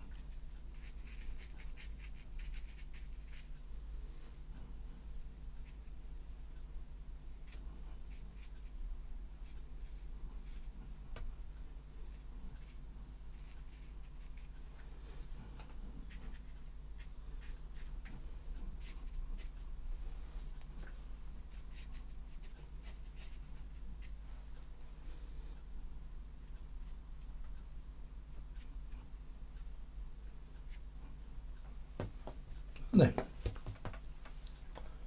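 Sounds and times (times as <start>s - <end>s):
steady low hum: 0.0s - 35.0s
brush strokes on paper: 12.1s - 25.8s.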